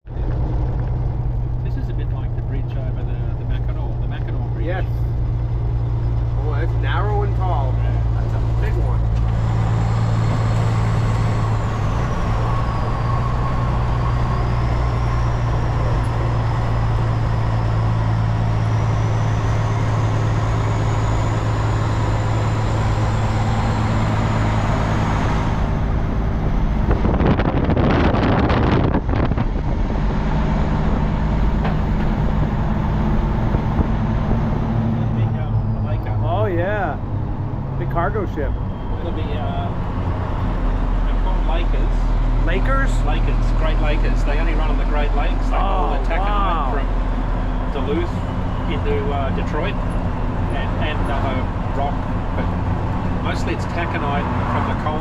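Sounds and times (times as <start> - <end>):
loud rattling rumble: 0.0 - 55.0
road noise: 0.0 - 55.0
truck diesel engine droning: 0.0 - 55.0.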